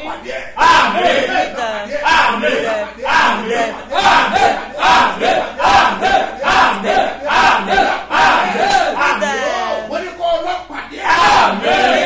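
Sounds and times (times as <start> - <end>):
man shouting rhythmically: 8.4 - 10.1.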